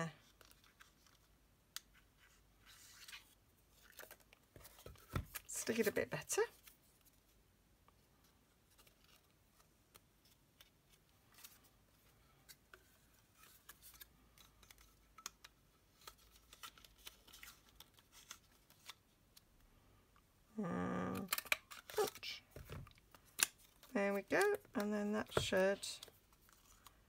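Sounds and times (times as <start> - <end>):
card stock rustling: 12.4 - 19.4.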